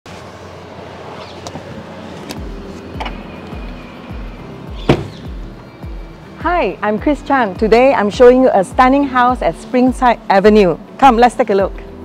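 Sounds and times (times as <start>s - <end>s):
street background noise: 0.1s - 12.0s
car door opening: 1.2s - 3.8s, 4.7s - 5.4s
music with a steady beat: 2.4s - 6.4s.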